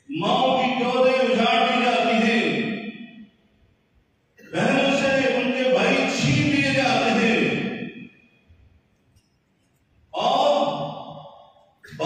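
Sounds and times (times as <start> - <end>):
man's drawn-out voice: 4.4 - 7.9, 10.1 - 12.0.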